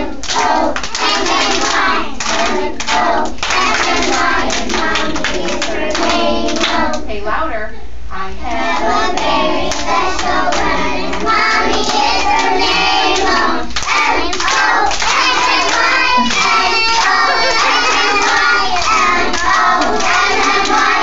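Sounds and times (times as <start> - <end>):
children singing in chorus: 0.0 - 7.0, 8.2 - 21.0
hands clapping: 0.2 - 6.9, 9.2 - 21.0.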